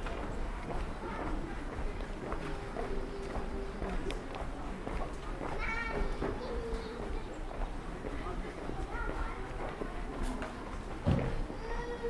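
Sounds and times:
footsteps on pavement: 0.0 - 11.4.

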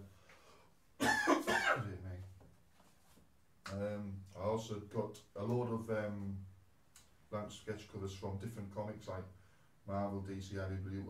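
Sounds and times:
man coughing: 1.0 - 2.0.

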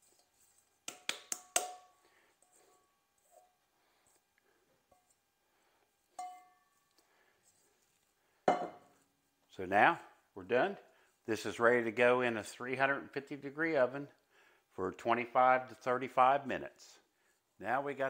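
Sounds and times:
metal bowl knocked with ringing: 6.2 - 6.6, 8.5 - 8.8.

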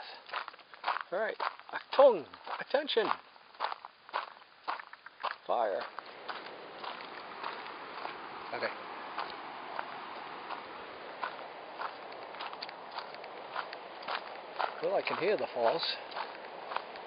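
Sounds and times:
footsteps on gravel: 0.0 - 17.0
rushing background noise: 5.8 - 17.0.

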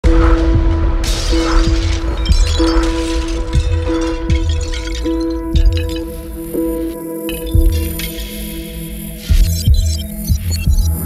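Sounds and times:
intro music with heavy bass beat: 0.0 - 11.0
shattering sound effect: 1.0 - 6.4.

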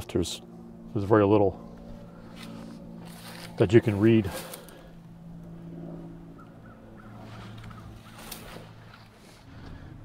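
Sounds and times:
distant traffic hum: 0.0 - 10.0
faint bird calls: 6.2 - 9.8.

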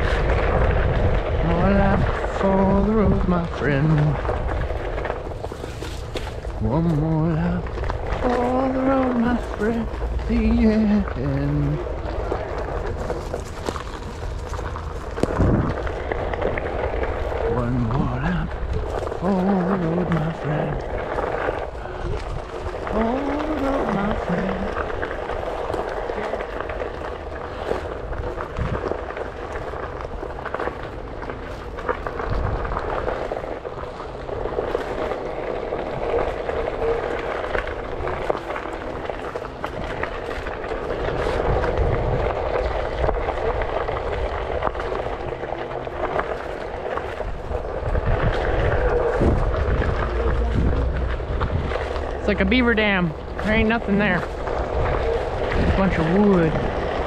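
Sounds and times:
tyre crunching on gravel: 0.0 - 57.0
wind rumbling on microphone: 0.0 - 57.0.

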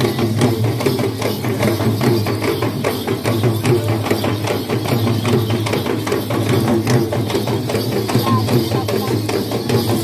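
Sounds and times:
procession drums beating fast: 0.0 - 10.0.

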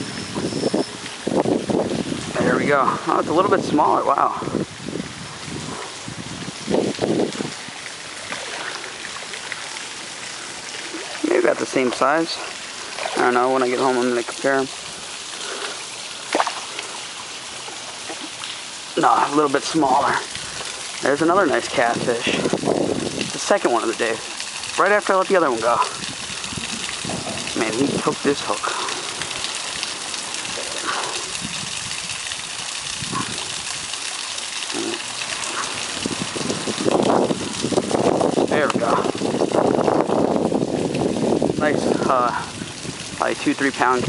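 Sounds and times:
river water trickling over rocks: 0.0 - 44.0
water splash: 5.3 - 41.0
river water rushing over rocks: 6.7 - 22.4.

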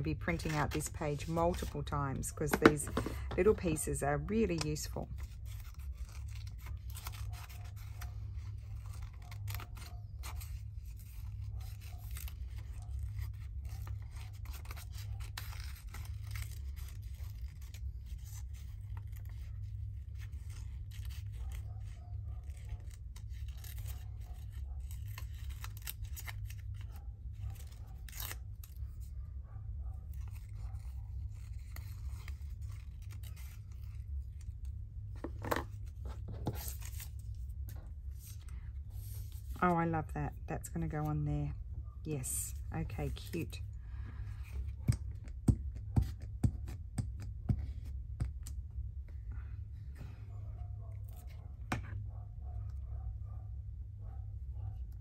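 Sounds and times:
scissors snipping paper: 0.1 - 29.2, 30.1 - 34.7.

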